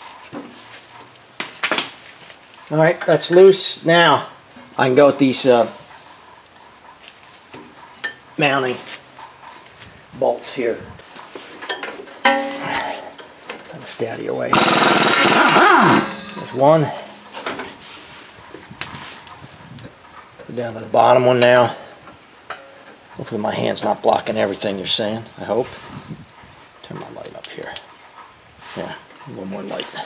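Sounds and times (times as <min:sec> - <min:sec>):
metallic clanks of wrenches: 0:11.6 - 0:13.8, 0:14.5 - 0:18.4
sharp metal clink: 0:12.2 - 0:12.9, 0:14.5 - 0:18.3.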